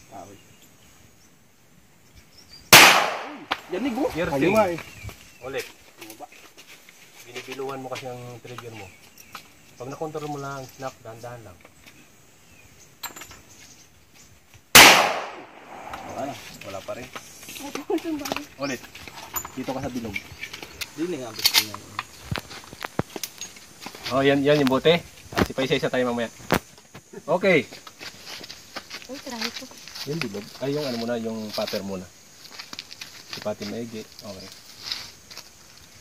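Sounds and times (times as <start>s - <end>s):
handgun shot: 2.7s - 3.7s, 14.8s - 16.0s.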